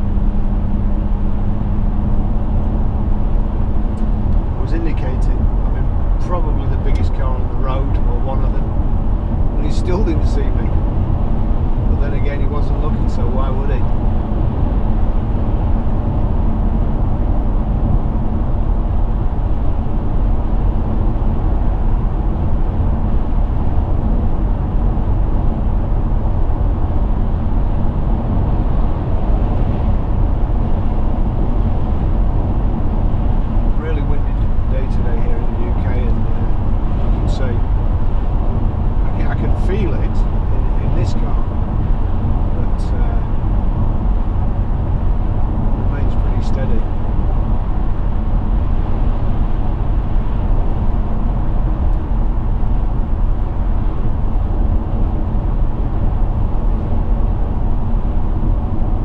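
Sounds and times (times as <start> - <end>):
car road and engine noise: 0.0 - 59.0.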